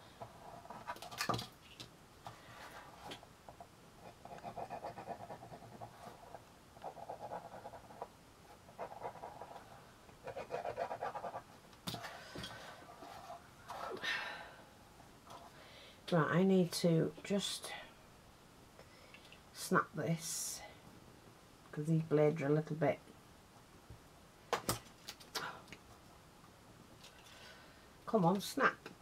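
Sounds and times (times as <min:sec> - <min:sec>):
pen scratching on cardboard: 0:04.0 - 0:11.4.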